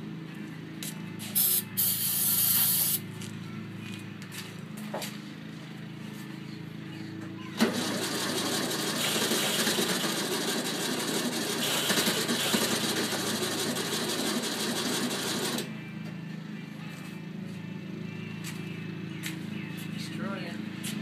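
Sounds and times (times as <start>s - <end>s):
car engine starting and running rattly: 7.4s - 15.7s.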